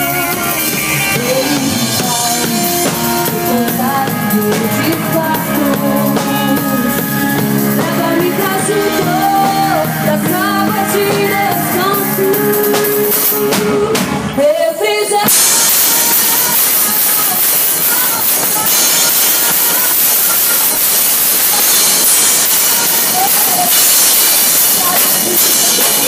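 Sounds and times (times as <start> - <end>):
live band playing: 0.0 - 26.0
woman singing: 0.0 - 26.0
cymbals hissing: 15.3 - 26.0.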